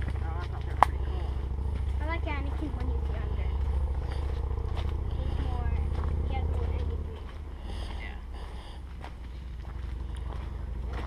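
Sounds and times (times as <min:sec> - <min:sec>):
footsteps on rocky dirt trail: 0:00.0 - 0:11.0
low microphone rumble: 0:00.0 - 0:11.0.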